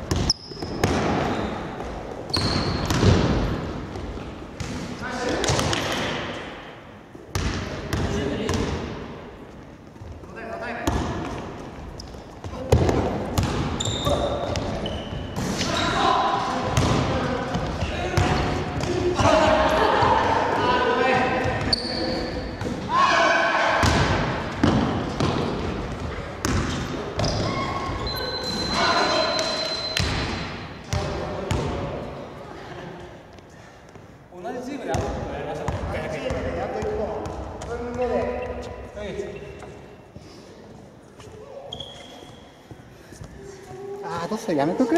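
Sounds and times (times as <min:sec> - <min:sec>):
shoe squeak: 0:00.2 - 0:03.0, 0:13.8 - 0:16.0, 0:21.6 - 0:22.6, 0:26.7 - 0:30.1, 0:38.1 - 0:40.0, 0:41.2 - 0:42.8
players calling out: 0:13.8 - 0:24.3, 0:27.1 - 0:30.0.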